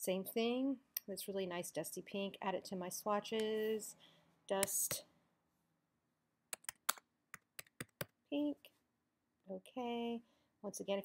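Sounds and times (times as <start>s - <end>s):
keyboard typing: 6.6s - 8.1s.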